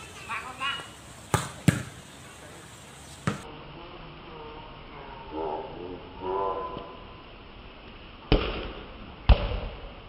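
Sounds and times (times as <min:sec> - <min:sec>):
hands slapping volleyball: 0:01.3 - 0:01.9.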